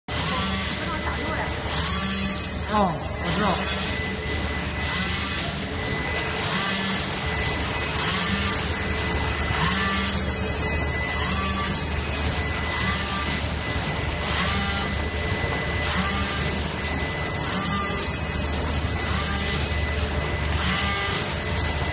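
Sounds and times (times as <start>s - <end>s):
machine whirs and hisses: 0.1s - 21.9s
packing machine whine and hum: 0.1s - 21.9s.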